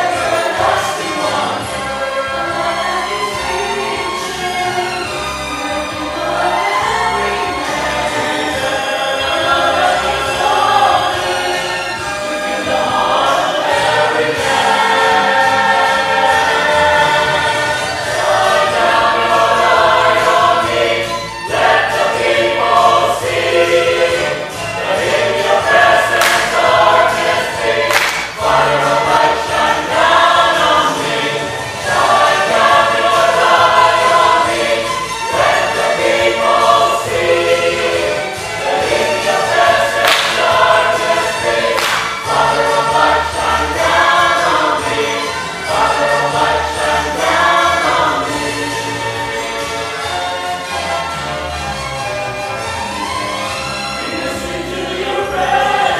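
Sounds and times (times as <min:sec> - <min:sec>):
church choir singing: 0:00.0 - 0:55.9
sharp percussive hits: 0:26.1 - 0:27.2, 0:27.8 - 0:29.0, 0:39.9 - 0:42.6.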